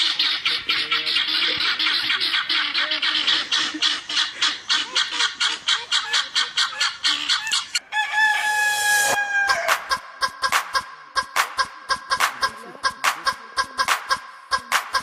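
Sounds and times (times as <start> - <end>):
hen long drawn-out call: 0.0 - 10.0
hens clucking rapidly: 0.0 - 15.0.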